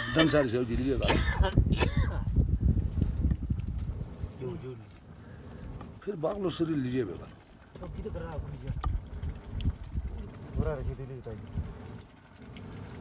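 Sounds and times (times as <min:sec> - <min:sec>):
low background rumble: 0:01.0 - 0:13.0.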